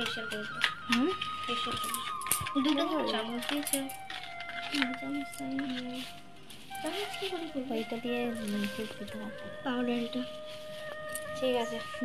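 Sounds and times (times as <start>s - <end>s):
girls talking: 0.0s - 4.0s
thin steady high tone: 0.0s - 12.0s.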